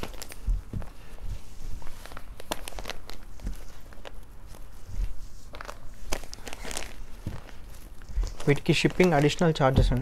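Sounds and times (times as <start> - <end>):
fabric rustling: 0.0 - 10.0.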